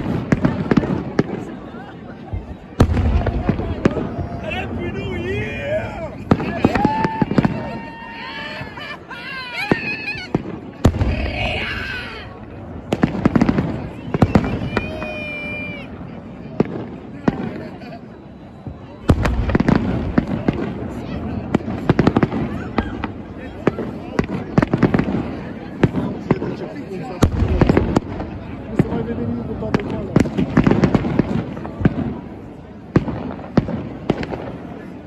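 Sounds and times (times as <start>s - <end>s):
fireworks bangs and crackles: 0.0s - 35.0s.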